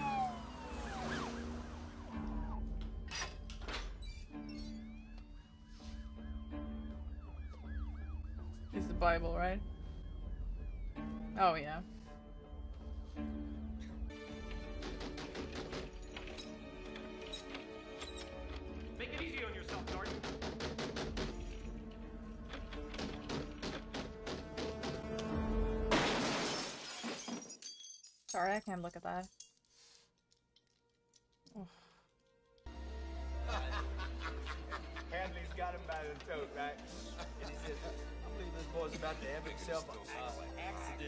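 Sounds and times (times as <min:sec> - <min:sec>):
police siren yelp: 0:00.0 - 0:03.1, 0:04.4 - 0:11.6
police siren slow wail: 0:00.0 - 0:14.4
film score music: 0:00.0 - 0:26.0, 0:30.6 - 0:41.0
window glass shattering: 0:25.8 - 0:28.6.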